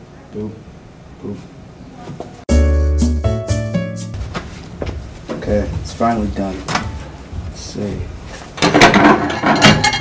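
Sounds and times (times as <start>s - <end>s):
plate rattling on glass turntable: 8.7s - 10.0s.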